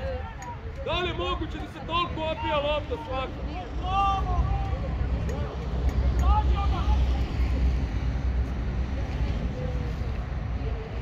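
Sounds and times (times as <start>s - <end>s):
people shouting calls: 0.0s - 5.5s
steady low rumble: 0.0s - 11.0s.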